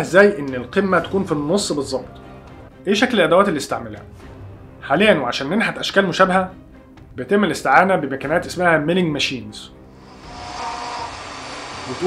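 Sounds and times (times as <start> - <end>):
faint high whine: 10.0 - 12.0
milling machine cutting metal: 10.0 - 12.0.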